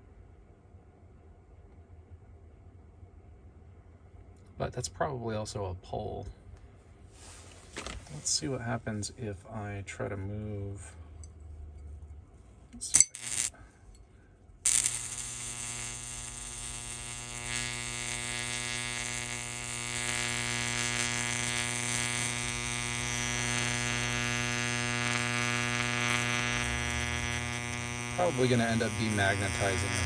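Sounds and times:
electrical arc buzzing: 12.8 - 13.6, 14.6 - 30.0
electrical arc snaps: 12.8 - 13.6, 14.6 - 30.0.

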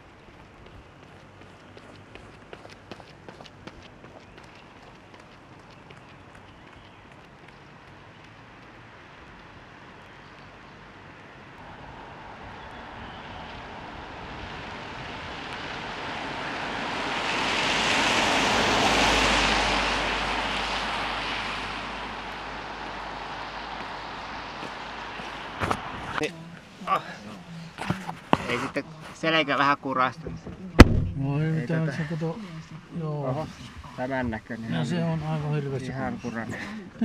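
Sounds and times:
low car rumble: 0.0 - 28.6, 30.3 - 35.0
tyres hissing on wet road: 11.6 - 27.3.

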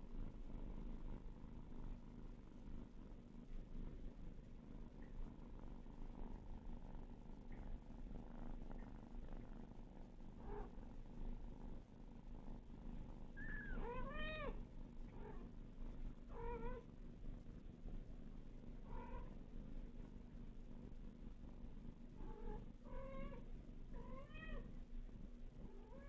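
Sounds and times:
cat purring: 0.0 - 26.0
kitten meows: 13.4 - 14.6.

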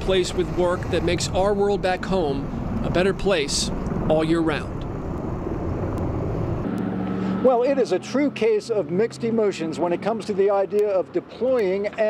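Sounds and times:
distant helicopter rotor rumble: 0.0 - 12.0
low hum: 1.7 - 7.8.

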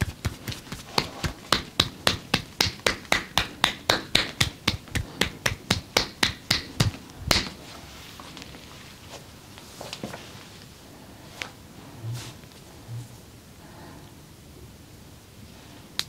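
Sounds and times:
hands slapping arm: 0.0 - 7.6.

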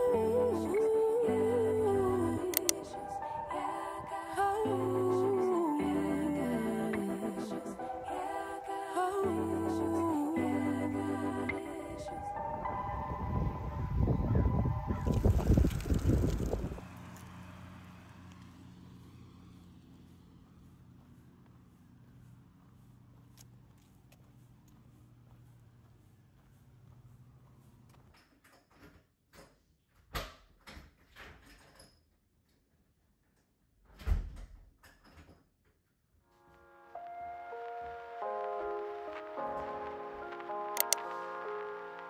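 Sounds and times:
wind buffeting microphone: 12.3 - 16.9.

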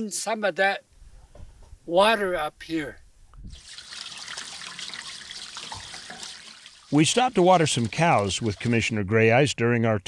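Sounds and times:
water pouring from hose into tank: 3.5 - 9.0.

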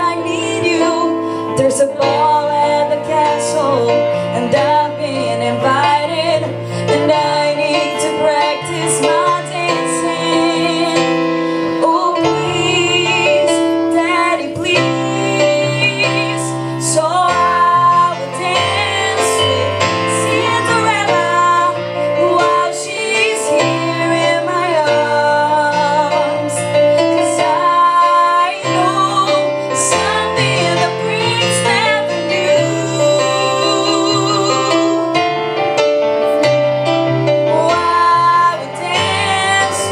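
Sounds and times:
female voices singing: 11.8 - 26.6, 27.2 - 35.0, 37.5 - 39.9.

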